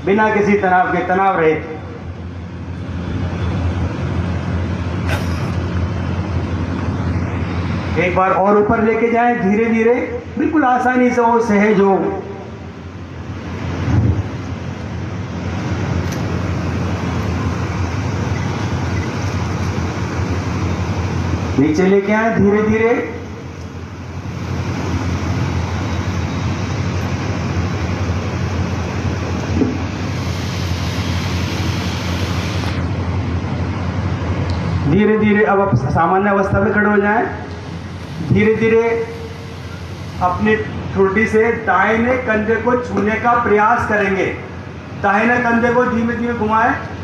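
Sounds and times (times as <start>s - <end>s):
loud steady rushing noise: 0.0s - 47.0s
outdoor background rumble: 1.7s - 9.2s, 12.3s - 43.6s.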